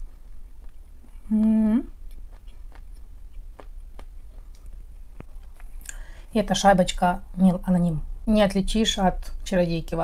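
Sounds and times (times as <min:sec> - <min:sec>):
chewing: 0:00.0 - 0:06.0
low steady hum: 0:00.0 - 0:10.0.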